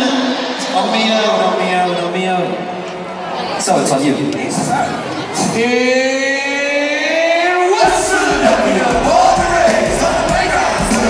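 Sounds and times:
music over sound system: 0:07.8 - 0:11.0.

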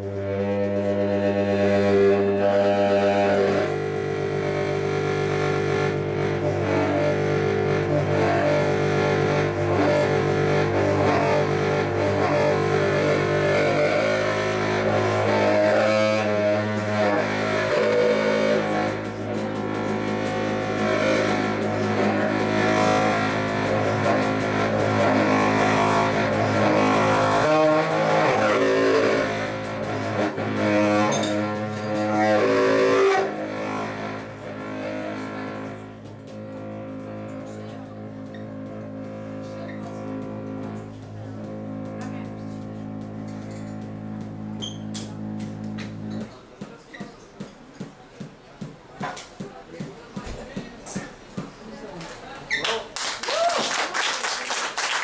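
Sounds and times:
low saxophone drone notes: 0:00.0 - 0:47.0.

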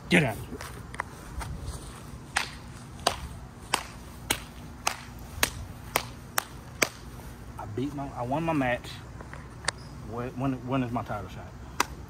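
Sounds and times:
footsteps slapping: 0:00.2 - 0:07.4.

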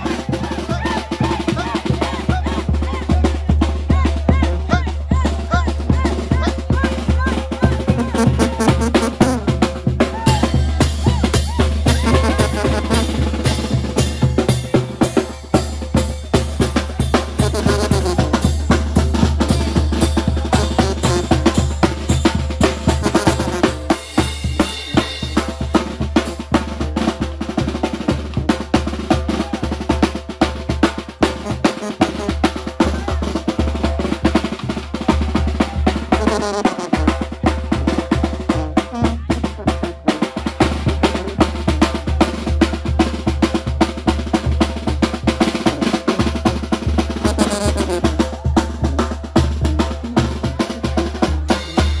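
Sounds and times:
snare drum with rolls: 0:00.0 - 0:52.0.

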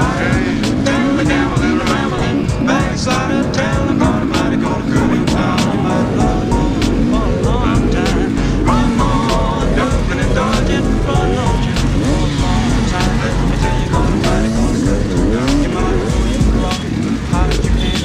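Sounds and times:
background music: 0:00.0 - 0:18.0
dirt bikes revving: 0:00.0 - 0:18.0.

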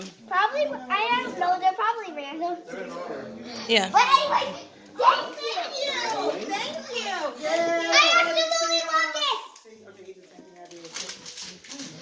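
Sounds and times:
faint low voices: 0:00.0 - 0:12.0.

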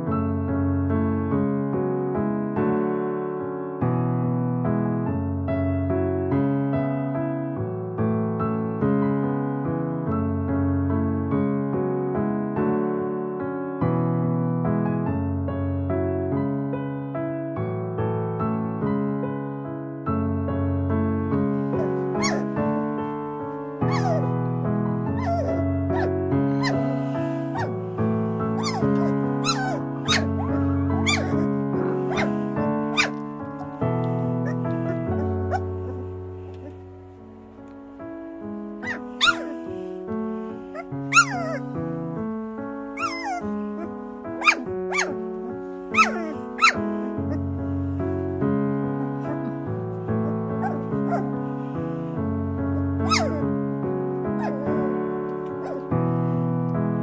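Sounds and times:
sustained piano-like chords: 0:00.0 - 0:57.0
background music: 0:20.3 - 0:57.0
puppies squeaking and whimpering: 0:21.8 - 0:22.6, 0:23.8 - 0:24.3, 0:25.2 - 0:36.8, 0:38.8 - 0:41.7, 0:43.0 - 0:47.5, 0:50.2 - 0:51.7, 0:52.8 - 0:53.5, 0:54.4 - 0:54.9, 0:55.6 - 0:55.9.

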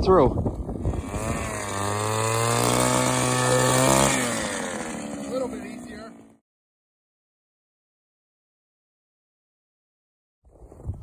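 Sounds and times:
ice auger engine running: 0:00.8 - 0:06.4.

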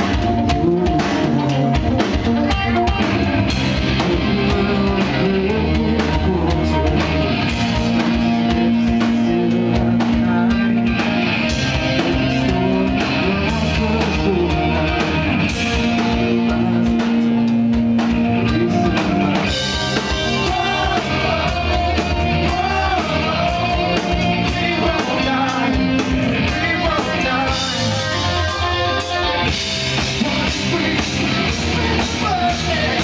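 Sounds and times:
bass guitar: 0:00.0 - 0:33.0
drum kit: 0:00.0 - 0:33.0
electric guitar: 0:00.0 - 0:33.0.

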